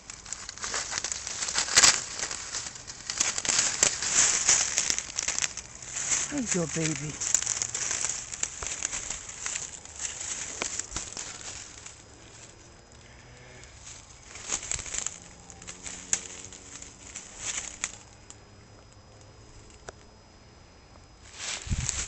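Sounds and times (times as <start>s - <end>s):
dry leaves rustling underfoot: 0.0s - 12.9s, 13.7s - 19.8s, 21.2s - 22.0s.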